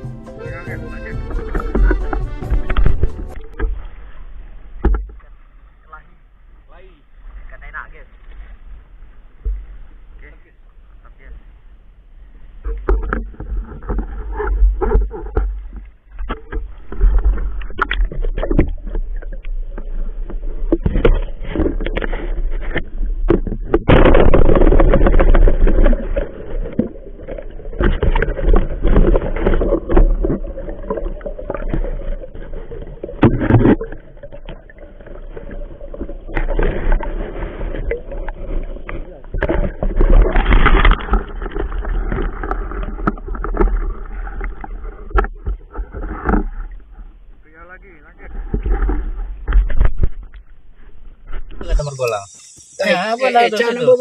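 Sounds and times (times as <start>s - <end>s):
underwater sound: 0.0s - 54.0s
handling knocks and scrapes: 1.0s - 4.0s, 12.6s - 47.0s
river water sloshing and gurgling: 1.0s - 52.8s.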